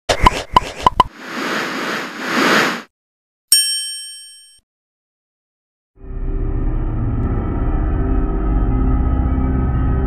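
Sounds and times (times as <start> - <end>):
whoosh building up: 0.7 - 2.9.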